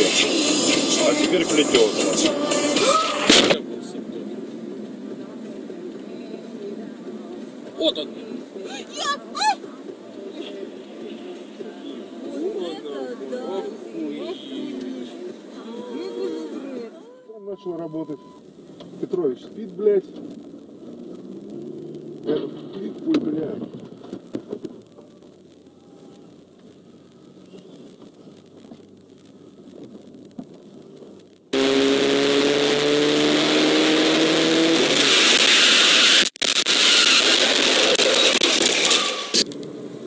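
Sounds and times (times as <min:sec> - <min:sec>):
music with voice in car: 0:00.0 - 0:03.4
car and road noise hum: 0:00.0 - 0:40.0
loud burst of noise: 0:20.2 - 0:40.0.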